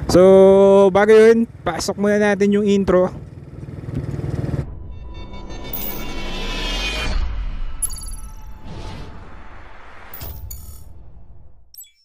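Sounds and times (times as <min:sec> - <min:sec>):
motorcycle engine running: 0:00.4 - 0:04.7
low rumble: 0:04.4 - 0:11.7.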